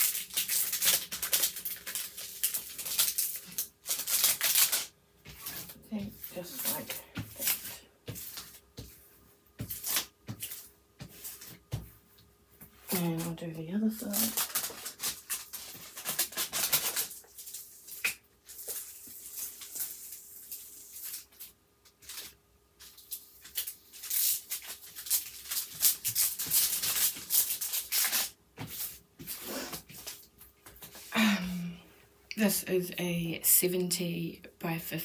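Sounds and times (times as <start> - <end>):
hands rubbing plastic film: 0.0 - 11.8, 14.0 - 31.0.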